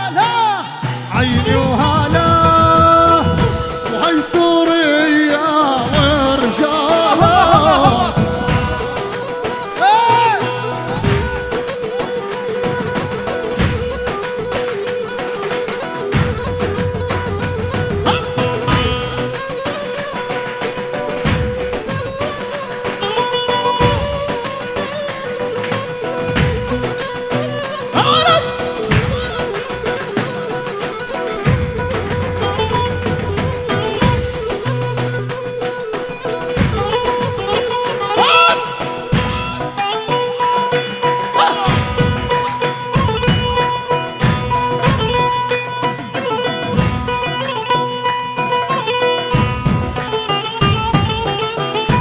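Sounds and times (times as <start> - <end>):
plucked lute: 0.8 - 52.0
low drum beats: 1.0 - 4.5, 7.2 - 9.3, 12.7 - 19.6, 25.7 - 35.4
wavering melody line: 7.0 - 43.0.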